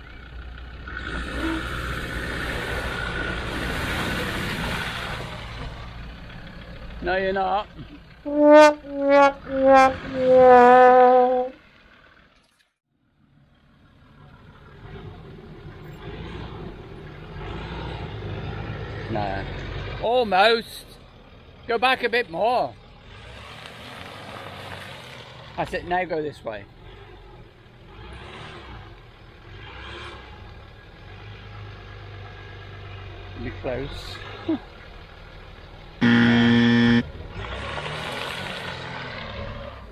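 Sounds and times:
car engine at low revs: 26.5s - 39.9s
car engine running low: 33.0s - 39.0s.

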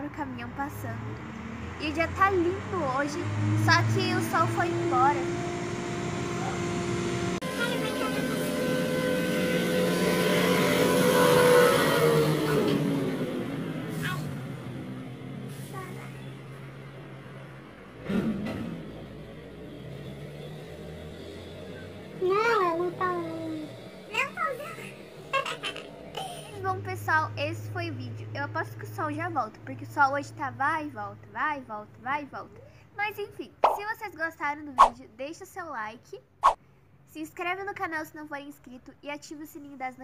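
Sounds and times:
truck passing: 0.0s - 35.0s.

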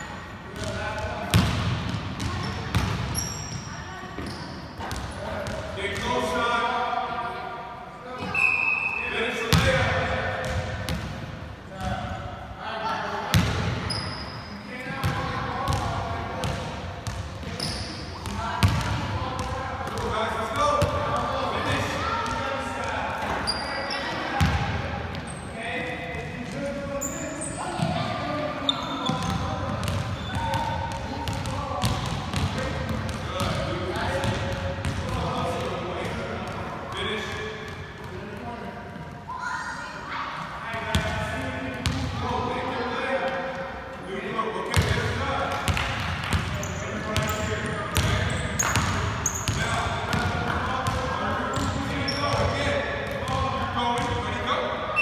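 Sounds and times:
basketballs bouncing on hardwood: 1.3s - 3.1s.

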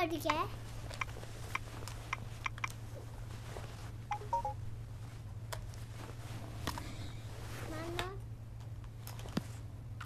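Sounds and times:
steady low hum: 0.0s - 10.0s
electronic beeps: 4.1s - 4.6s.

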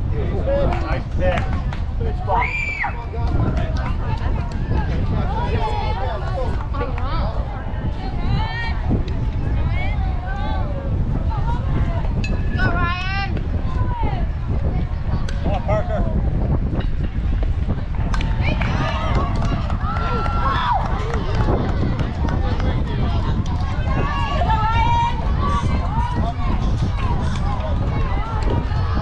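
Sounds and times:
people talking and calling out: 0.0s - 29.0s
wind rumble on microphone: 0.0s - 29.0s.

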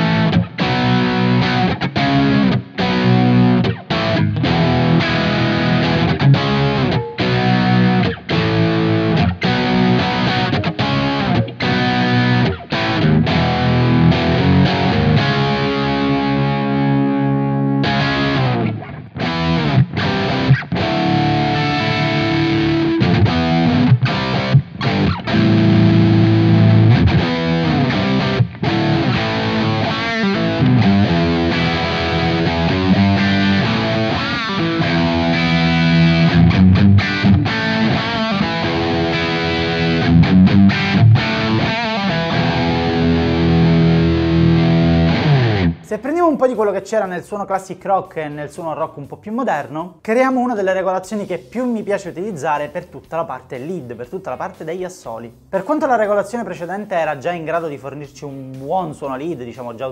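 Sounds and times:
overdriven electric guitar riffs: 0.0s - 45.9s.

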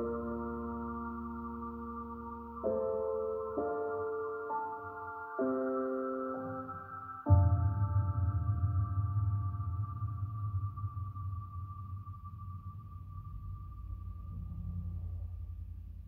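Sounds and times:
deep low rumble: 7.3s - 16.0s.

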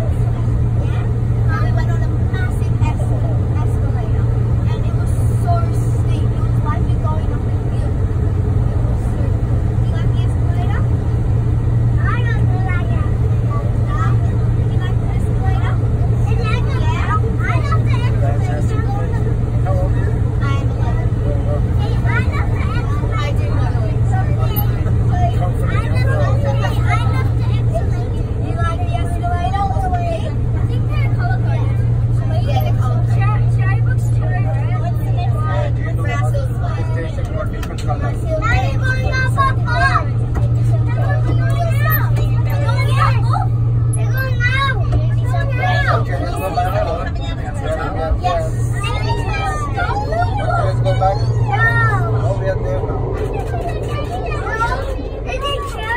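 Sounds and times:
train rumbling through tunnel: 0.0s - 55.9s.

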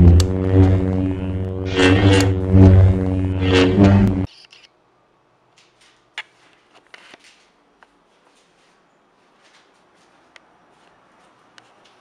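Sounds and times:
deep steady drone: 0.0s - 4.3s
sharp hit: 0.0s - 4.3s
whoosh: 0.0s - 4.3s.

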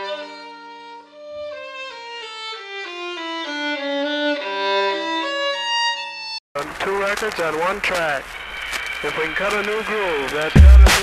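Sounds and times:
violin melody: 0.0s - 6.4s.

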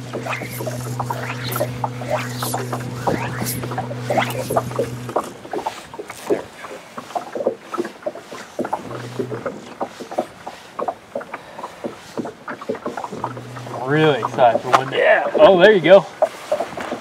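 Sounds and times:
low steady hum: 0.0s - 6.8s, 8.6s - 11.6s, 12.9s - 15.8s
water lapping against boat hull: 0.0s - 17.0s.

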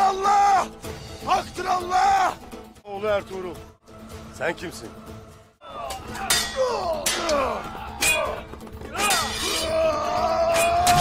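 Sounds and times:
men shouting: 0.0s - 2.5s, 5.6s - 11.0s
dramatic background music: 0.0s - 11.0s
swords clashing: 5.9s - 8.4s, 9.0s - 11.0s.

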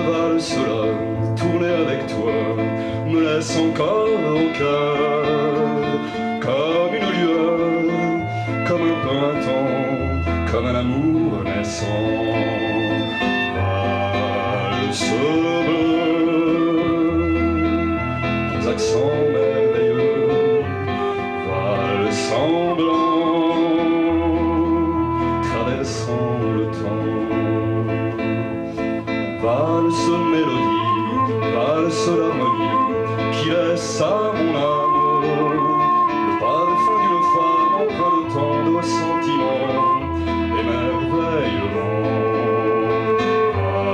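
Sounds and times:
acoustic guitar: 0.0s - 43.9s
violin melody: 0.0s - 43.9s.

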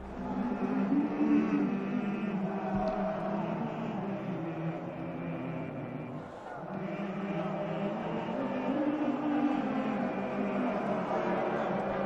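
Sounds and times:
male choir singing: 0.0s - 12.0s.

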